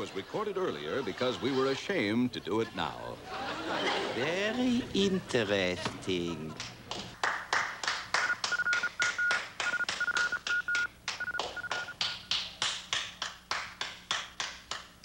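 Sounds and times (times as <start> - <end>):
hands clapping slowly: 6.6 - 15.0
faint high beeping tone: 8.2 - 12.0.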